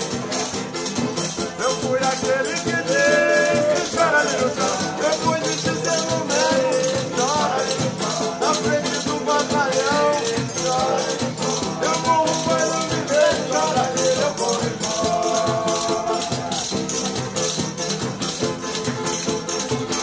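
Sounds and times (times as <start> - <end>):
acoustic guitars strumming: 0.0 - 20.0
hand-beaten frame drum: 0.0 - 20.0
men singing: 0.5 - 17.9.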